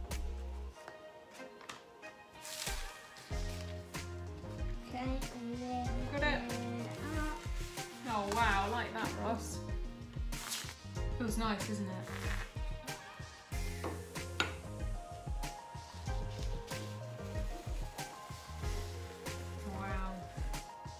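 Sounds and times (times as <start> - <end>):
background music with bass line: 0.0 - 0.8, 2.7 - 20.9
person singing: 5.3 - 7.8.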